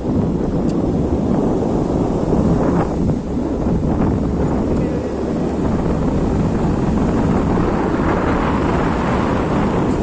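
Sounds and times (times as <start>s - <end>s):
vehicle rumbling along a road: 0.0s - 10.0s
wind buffeting microphone: 0.0s - 10.0s.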